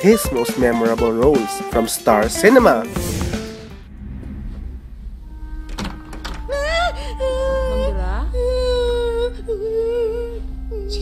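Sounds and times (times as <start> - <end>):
woman crying in a wail: 6.4 - 11.0.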